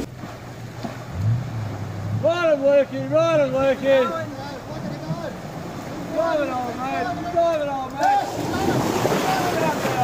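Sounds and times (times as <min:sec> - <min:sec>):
water washing: 0:00.0 - 0:10.0.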